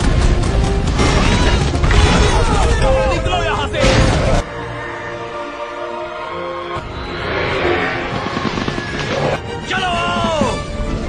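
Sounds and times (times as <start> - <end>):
film soundtrack music: 0.0 - 11.0
swell of noise: 4.4 - 9.5.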